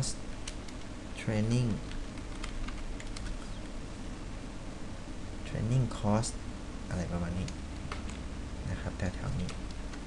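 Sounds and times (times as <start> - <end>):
keyboard typing: 1.8 - 3.7, 7.4 - 8.2.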